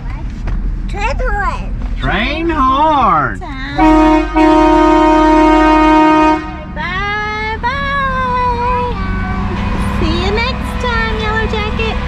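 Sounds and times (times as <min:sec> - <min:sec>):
train horn blast: 0:03.8 - 0:06.8.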